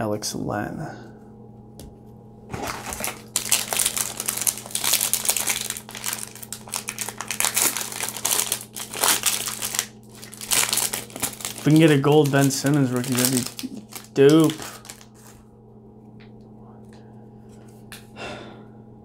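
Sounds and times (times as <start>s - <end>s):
card pack wrapper crinkling: 2.5s - 15.4s.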